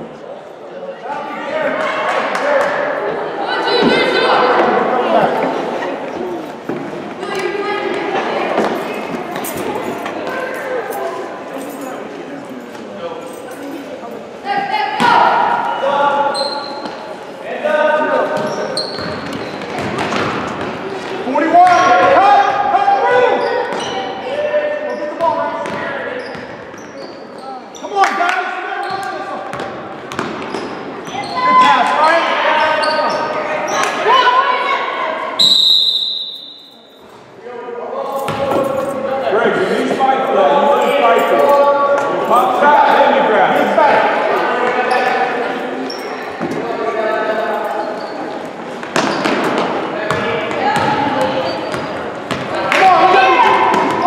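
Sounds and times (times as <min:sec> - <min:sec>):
referee's whistle: 0:35.4 - 0:37.0
spectators shouting and cheering: 0:49.6 - 0:54.0.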